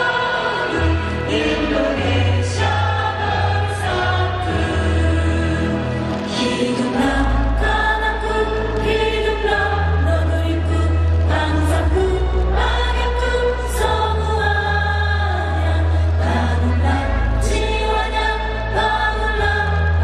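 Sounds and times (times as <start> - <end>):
women singing into microphones: 0.0 - 20.0.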